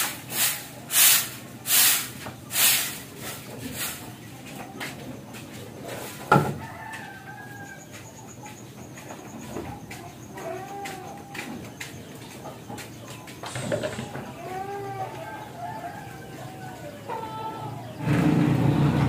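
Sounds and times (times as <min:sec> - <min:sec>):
chickens clucking: 0:00.0 - 0:19.0.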